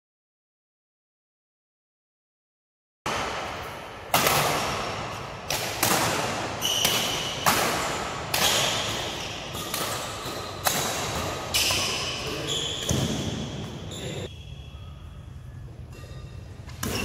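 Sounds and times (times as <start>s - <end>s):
racket hitting shuttlecock: 3.1s - 13.9s.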